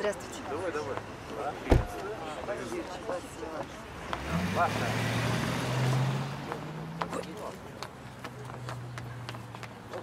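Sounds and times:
car engine pulling away: 0:03.9 - 0:07.7.

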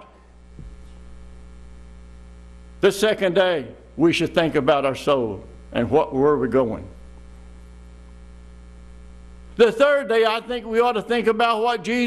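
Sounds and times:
low electrical mains hum: 0:00.0 - 0:12.0
faint soft knock: 0:00.6 - 0:00.9.

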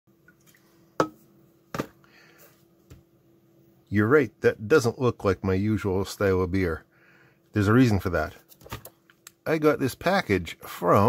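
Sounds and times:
faint steady hum: 0:00.1 - 0:11.0
can and box knocking on mat: 0:01.0 - 0:02.0.

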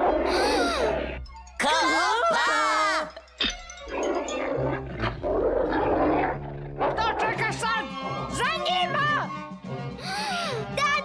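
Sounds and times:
cartoon dog growling and snarling: 0:00.0 - 0:01.2, 0:03.9 - 0:07.6
background music: 0:00.0 - 0:11.0.

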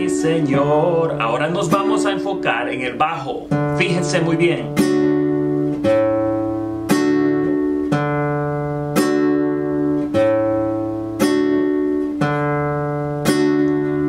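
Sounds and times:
classical guitar chords: 0:00.0 - 0:14.0.

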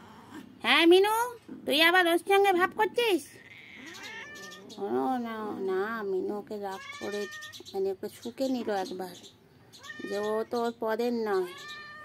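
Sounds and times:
cat yowling and meowing: 0:03.4 - 0:04.7, 0:06.7 - 0:07.6, 0:09.8 - 0:10.4, 0:11.3 - 0:12.0.

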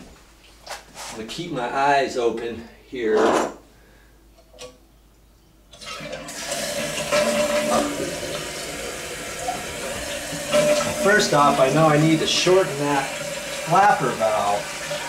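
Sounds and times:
water rushing into toilet bowl: 0:05.8 - 0:15.0.

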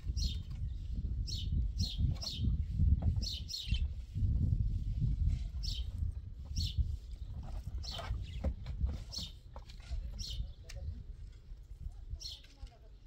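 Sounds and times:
small birds chirping: 0:00.0 - 0:04.3, 0:05.2 - 0:13.0.

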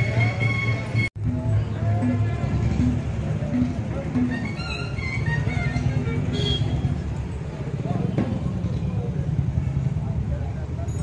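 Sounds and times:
music: 0:00.0 - 0:07.0.

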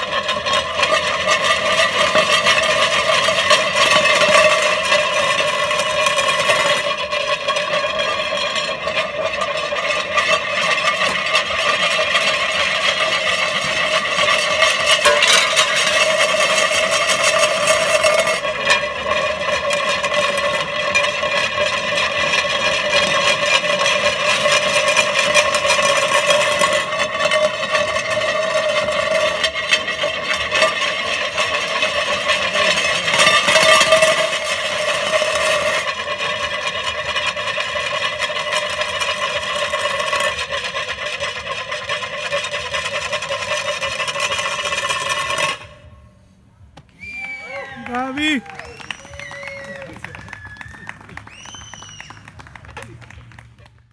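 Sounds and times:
scraping rattling texture: 0:00.0 - 0:46.0.

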